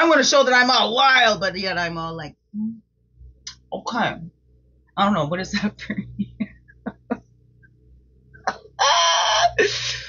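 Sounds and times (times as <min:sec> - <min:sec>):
woman laughing loudly: 0:06.0 - 0:07.2.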